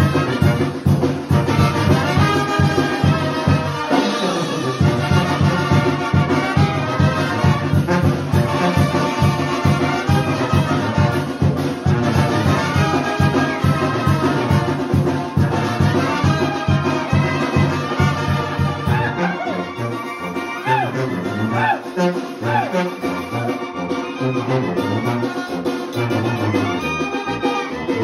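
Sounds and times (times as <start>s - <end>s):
trumpets and trombones melody: 0.0s - 28.0s
tuba bass notes: 0.0s - 28.0s.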